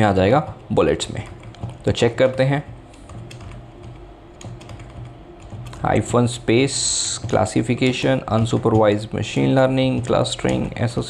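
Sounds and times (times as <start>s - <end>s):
computer keyboard keystrokes: 0.0s - 11.0s.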